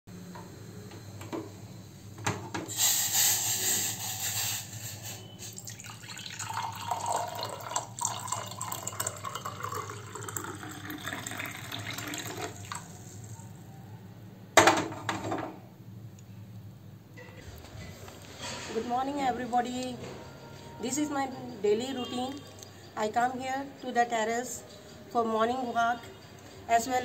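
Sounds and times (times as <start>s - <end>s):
hiss: 2.7s - 5.6s
water pouring into a glass: 5.5s - 13.1s.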